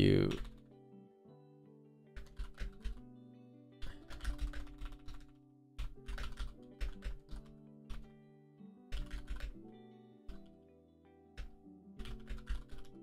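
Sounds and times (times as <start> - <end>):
background music: 0.0 - 13.0
computer keyboard typing: 0.2 - 0.7, 2.1 - 3.1, 3.8 - 8.1, 8.9 - 9.6, 11.4 - 13.0.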